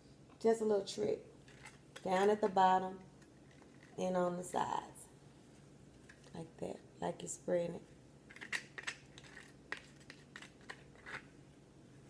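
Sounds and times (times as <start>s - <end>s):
taco shell crunching: 8.3s - 11.3s.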